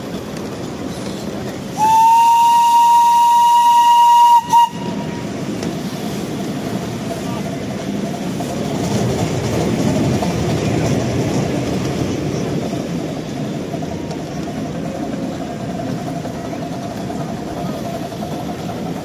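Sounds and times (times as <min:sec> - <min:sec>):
small train rolling on rails: 0:00.0 - 0:19.0
steam locomotive whistle: 0:01.8 - 0:05.4.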